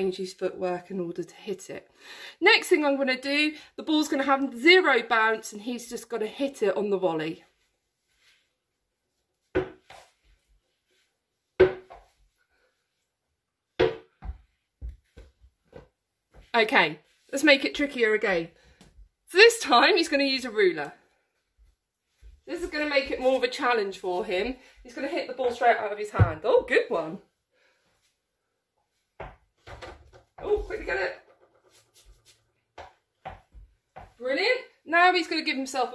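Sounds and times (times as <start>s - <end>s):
small ball knocking: 11.6s - 12.1s, 29.2s - 32.0s.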